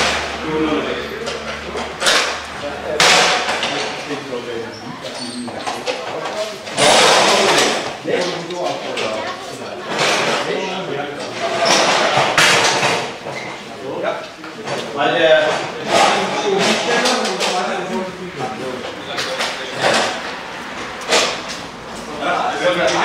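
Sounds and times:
people talking: 0.0s - 12.6s, 13.7s - 20.4s, 21.8s - 23.0s.

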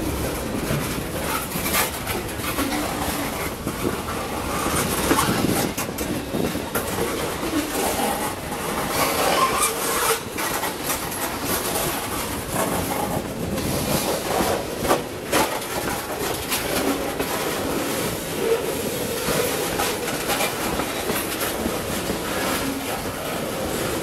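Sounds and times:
train wheels rumbling on rails: 0.0s - 24.0s
wheels clicking over rail joints: 0.0s - 24.0s.

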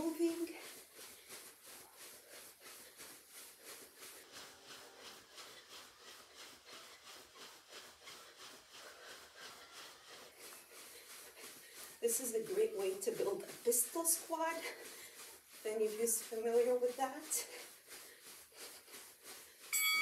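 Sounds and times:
footfalls jogging on carpet: 0.0s - 20.0s.

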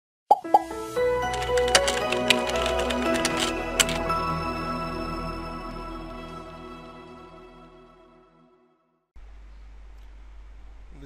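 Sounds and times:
bright music of held notes: 0.5s - 8.2s
crisp clicks and taps: 1.3s - 4.0s.

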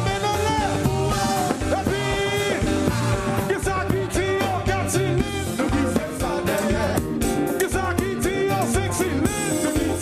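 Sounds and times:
drum beat: 0.0s - 10.0s
guitar: 0.0s - 10.0s
live band playing: 0.0s - 10.0s
person singing: 0.0s - 10.0s.

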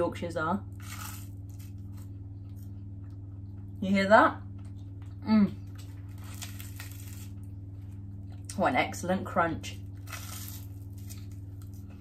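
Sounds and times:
low electrical hum: 0.0s - 12.0s
crunchy food being chewed: 0.7s - 3.8s, 4.5s - 8.5s, 9.9s - 12.0s.

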